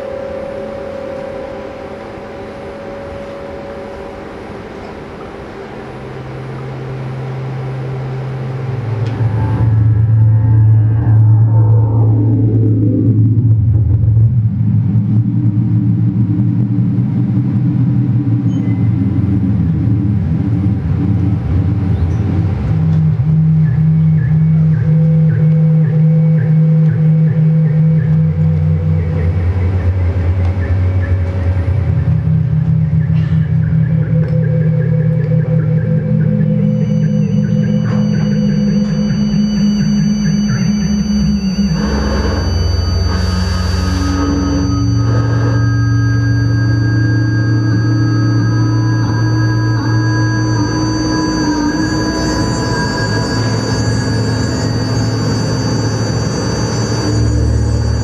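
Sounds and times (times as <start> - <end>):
hissing swell: 0.0 - 16.7, 36.6 - 58.0
faint high tones: 0.0 - 21.0, 21.8 - 58.0
low synthesizer drone: 0.0 - 58.0.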